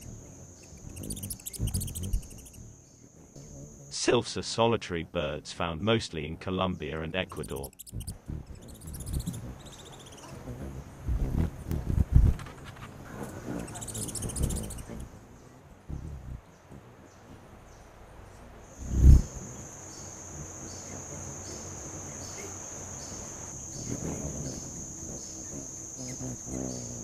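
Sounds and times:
cricket-like trill: 0.0 - 4.4, 7.1 - 15.1, 18.6 - 27.0
high buzzy insect trills: 0.0 - 27.0
low thumps: 10.6 - 12.6.

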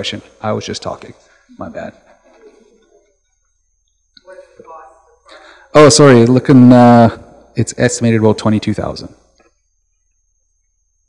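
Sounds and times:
faint murmur: 1.2 - 5.7.

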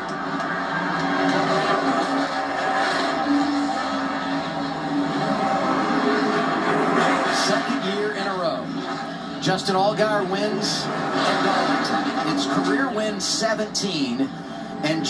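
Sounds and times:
car engine revving on tv speaker: 0.0 - 15.0.

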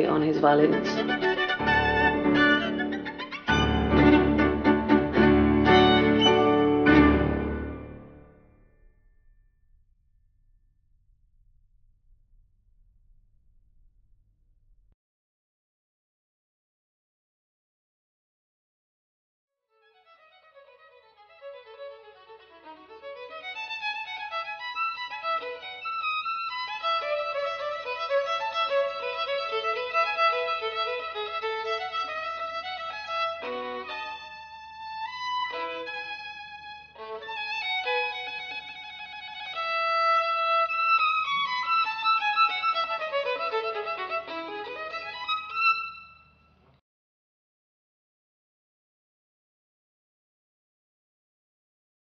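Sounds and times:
violin melody: 0.0 - 8.2, 19.8 - 46.7.

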